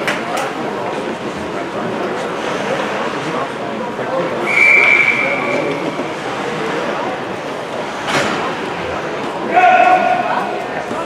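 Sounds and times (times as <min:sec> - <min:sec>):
murmur of spectators: 0:00.0 - 0:11.0
referee's whistle blast: 0:04.4 - 0:05.7.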